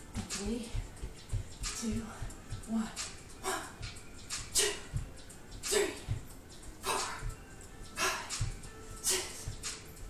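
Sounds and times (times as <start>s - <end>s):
bare feet jogging on a mat: 0.0s - 2.7s, 8.4s - 8.7s.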